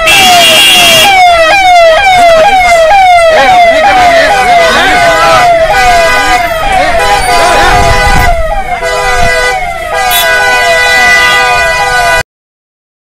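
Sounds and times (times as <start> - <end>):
electronic siren wailing: 0.0 - 12.2
crowd voices: 1.7 - 12.2.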